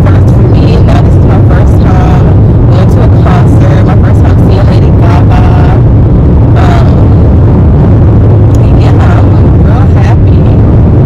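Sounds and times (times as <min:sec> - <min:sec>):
person speaking: 0:00.0 - 0:05.8, 0:06.6 - 0:07.0, 0:08.6 - 0:10.6
engine and road rumble: 0:00.0 - 0:11.0.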